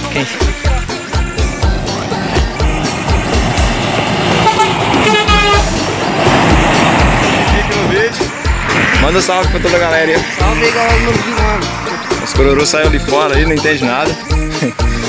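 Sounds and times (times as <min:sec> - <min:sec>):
music with thumping beat: 0:00.5 - 0:09.7
truck passing on wet road: 0:01.6 - 0:13.3
truck air horn: 0:04.2 - 0:06.0.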